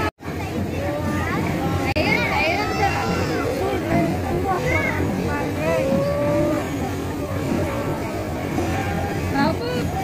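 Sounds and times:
crowd of overlapping voices: 0.0 - 10.0.

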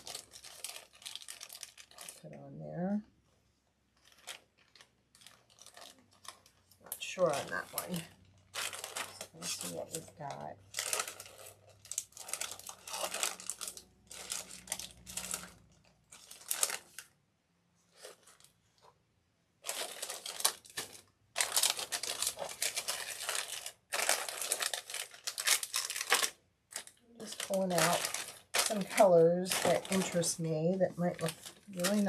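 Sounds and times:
plastic bags crinkling: 0.0 - 2.4, 3.9 - 17.2, 17.9 - 18.8, 19.6 - 32.0.

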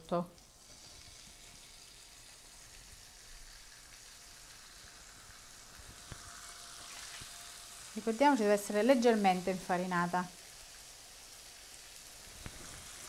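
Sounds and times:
meat sizzling in a pan: 0.1 - 13.0.

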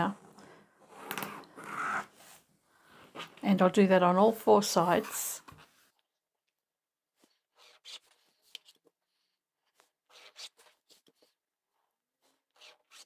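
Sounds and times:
pen scratching on fabric: 0.9 - 2.4, 7.2 - 8.8, 9.7 - 11.4, 12.2 - 13.0.

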